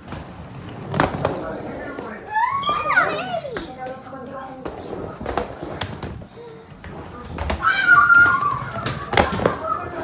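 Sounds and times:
children squealing and shouting: 2.3 - 3.5, 7.5 - 10.0.

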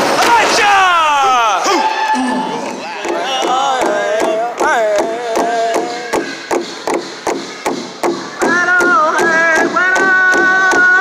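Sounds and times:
large drum steady beat: 3.0 - 11.0.

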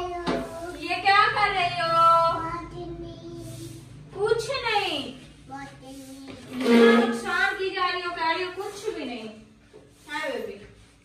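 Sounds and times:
girl singing in a high voice: 2.4 - 3.6.

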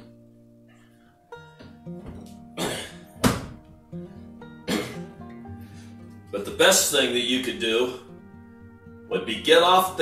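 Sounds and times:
soft guitar music: 0.0 - 10.0.

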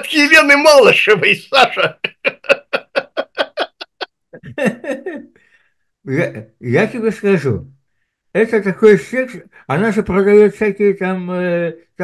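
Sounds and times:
man laughing: 1.6 - 5.3.

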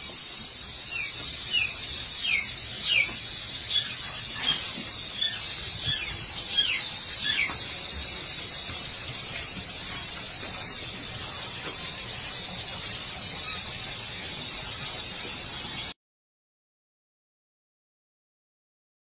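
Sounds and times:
high-pitched hiss: 0.0 - 16.0.

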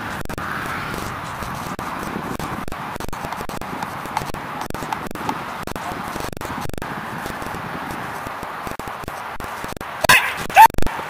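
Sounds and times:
dog barking loudly: 10.0 - 10.7.

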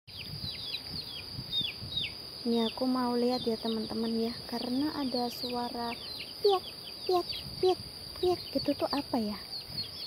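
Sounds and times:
small bird calling piak notes: 0.1 - 10.0
steady high-pitched hum: 0.2 - 10.0.

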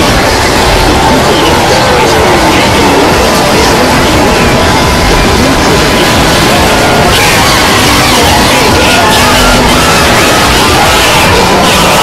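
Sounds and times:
distorted jumble of soundtracks: 0.0 - 12.0.

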